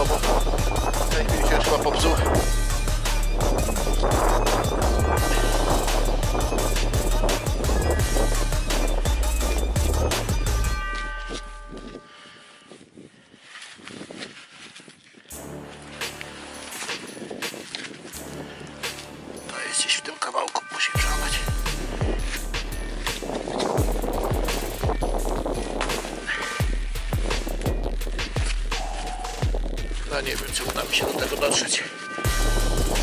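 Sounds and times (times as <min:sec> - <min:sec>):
wind rumbling on microphone: 0:00.0 - 0:19.5, 0:21.0 - 0:33.0
metal detector tones: 0:10.4 - 0:12.6
scraping and knocking on frozen ground: 0:21.7 - 0:32.2.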